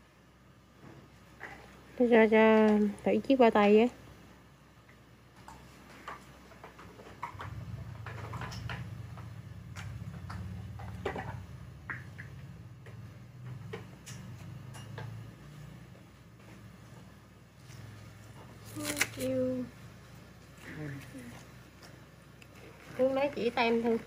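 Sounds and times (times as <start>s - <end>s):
low steady hum: 0.0s - 24.0s.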